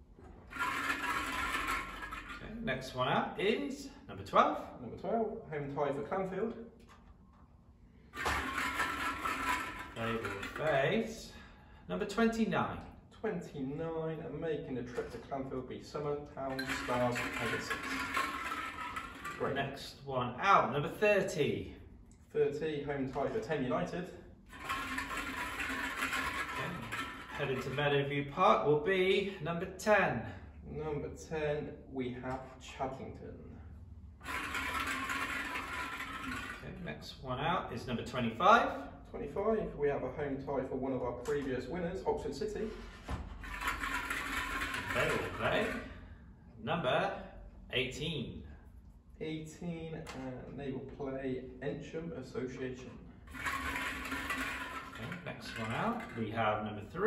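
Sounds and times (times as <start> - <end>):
plastic balls rattling in glass bowl: 0.5 - 2.5, 8.2 - 11.1, 16.5 - 19.8, 24.5 - 27.9, 34.2 - 36.7, 42.7 - 46.0, 53.3 - 56.3.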